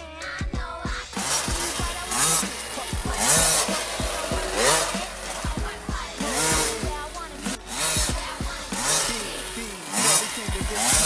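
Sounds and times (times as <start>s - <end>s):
motocross bike engine revving: 1.0s - 11.0s.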